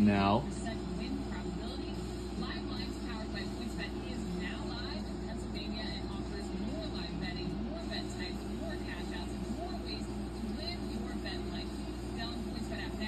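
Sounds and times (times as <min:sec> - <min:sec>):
steady low hum: 0:00.0 - 0:13.0
television sports broadcast speech: 0:00.0 - 0:13.0.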